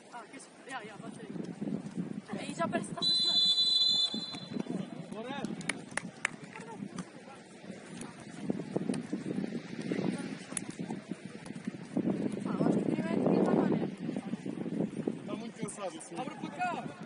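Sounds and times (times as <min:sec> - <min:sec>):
referee's whistle blast: 0:03.0 - 0:04.6
running footsteps: 0:04.0 - 0:13.5.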